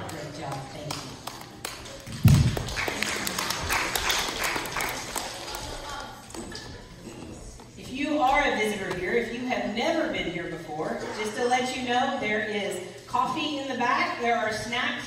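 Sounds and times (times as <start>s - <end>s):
microphone thumping: 2.1s - 2.7s.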